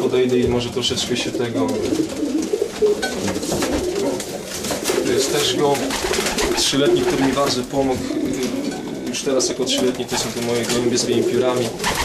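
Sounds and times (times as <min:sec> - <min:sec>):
pigeons cooing: 0:01.0 - 0:12.0.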